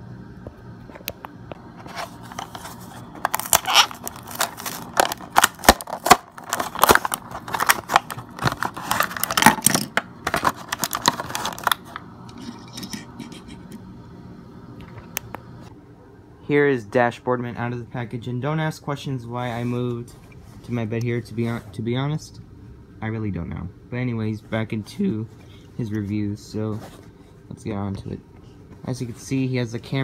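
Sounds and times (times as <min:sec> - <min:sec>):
plastic packaging crackling and tearing: 0:01.9 - 0:12.0.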